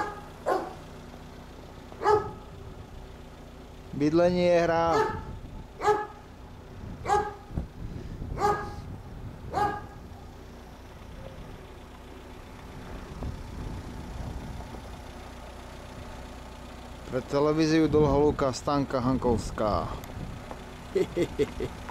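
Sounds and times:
dog barking: 0.0s - 0.8s, 2.0s - 2.4s, 4.9s - 6.2s, 7.0s - 7.5s, 8.4s - 8.9s, 9.5s - 10.0s
low outdoor rumble: 0.0s - 21.9s.

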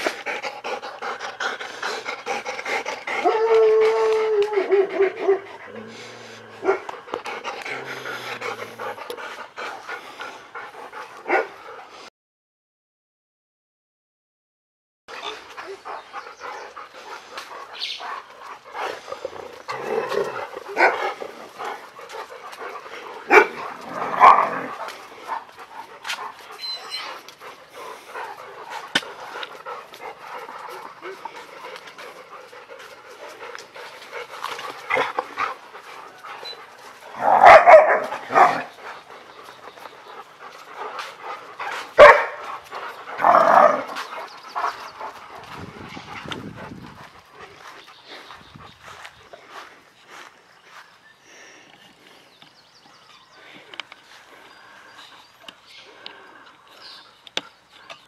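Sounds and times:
dog barking: 11.3s - 11.5s, 20.7s - 21.0s, 23.3s - 24.7s, 37.3s - 38.7s, 42.0s - 42.4s.

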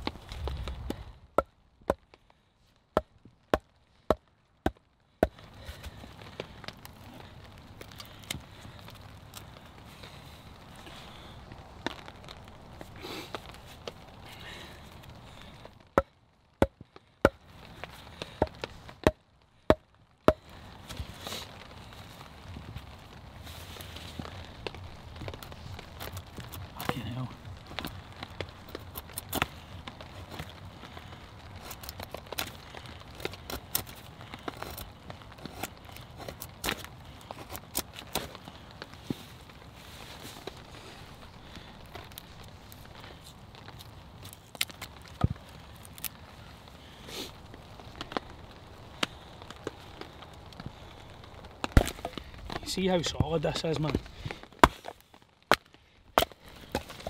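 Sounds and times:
wood cracking and splitting: 0.0s - 57.0s.

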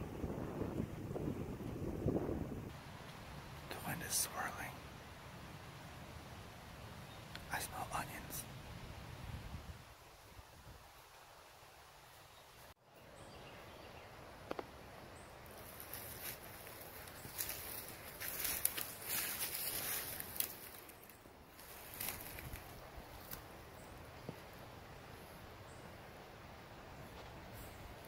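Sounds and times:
footsteps through leaf litter: 15.6s - 21.0s
twigs snapping: 15.6s - 23.5s.

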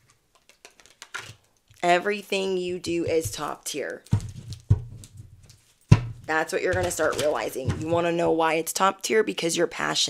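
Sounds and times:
cards knocking on table: 4.1s - 5.3s, 5.9s - 8.0s.

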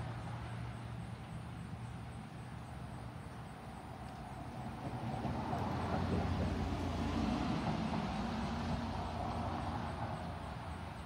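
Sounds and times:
motor vehicle passing by: 4.2s - 11.0s.

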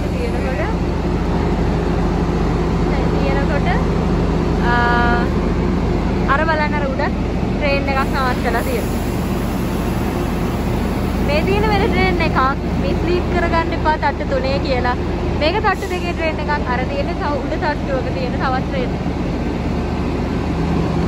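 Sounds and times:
train idling hum: 0.0s - 21.0s
people's voices: 11.2s - 19.0s.

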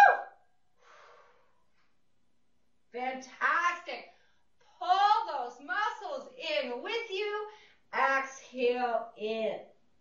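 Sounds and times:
woman whooping: 0.0s - 0.3s
faint breathy exhale: 0.8s - 1.6s.

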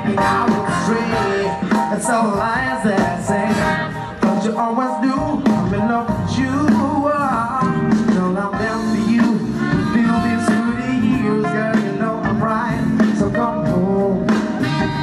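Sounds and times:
bending lead melody: 0.0s - 15.0s
live band playing upbeat song: 0.0s - 15.0s.

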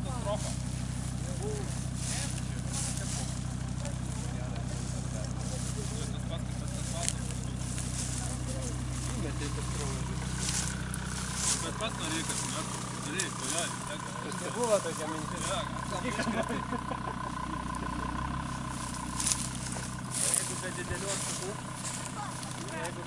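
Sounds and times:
people talking faintly: 0.0s - 17.5s, 18.8s - 23.0s
car engine idling: 0.0s - 23.0s.

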